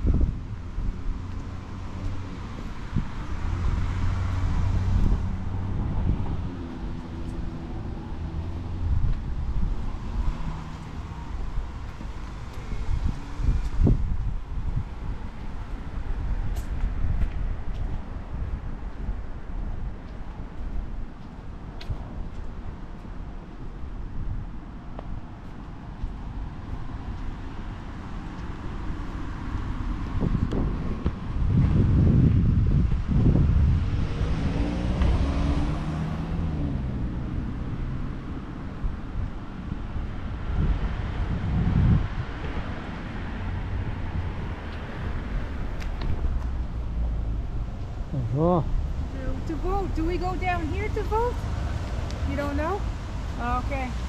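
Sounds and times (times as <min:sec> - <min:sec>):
vehicle passing by: 0:00.0 - 0:14.2, 0:28.7 - 0:39.7, 0:40.3 - 0:54.0
street noise: 0:00.0 - 0:54.0
wind buffeting microphone: 0:00.0 - 0:54.0.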